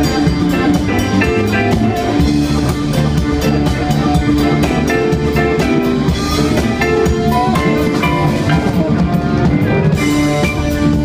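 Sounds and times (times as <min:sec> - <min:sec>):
blues band playing: 0:00.0 - 0:11.0
drum kit beat: 0:00.0 - 0:11.0
electric guitar: 0:00.0 - 0:11.0
keyboard: 0:00.0 - 0:11.0.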